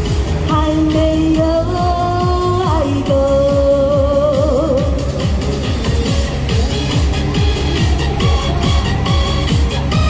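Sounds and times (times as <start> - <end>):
backing track with drum beat: 0.0 - 10.0
woman singing pop ballad: 0.4 - 5.4.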